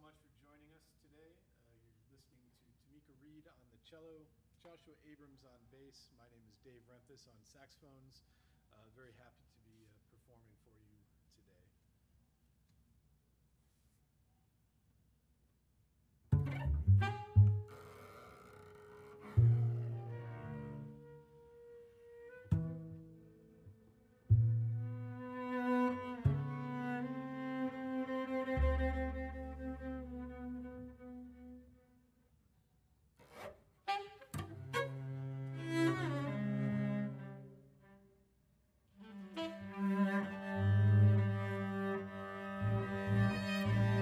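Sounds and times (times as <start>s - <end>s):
improvised chamber jazz: 16.3s - 31.9s, 33.4s - 38.0s, 39.0s - 44.0s.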